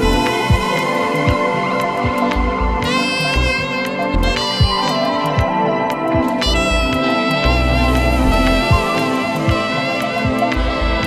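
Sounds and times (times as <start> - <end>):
downtempo electronic music: 0.0 - 11.0.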